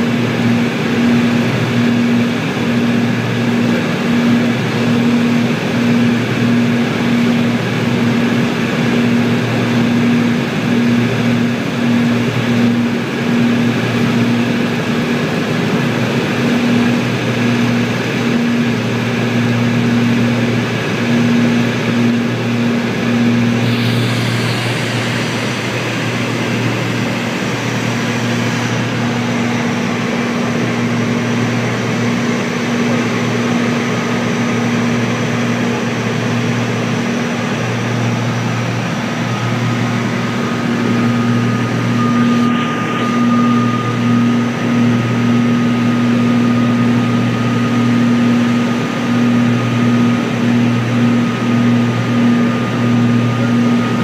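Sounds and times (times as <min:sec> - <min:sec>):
propeller engines droning: 0:00.0 - 0:54.0
airflow hiss: 0:23.6 - 0:29.7.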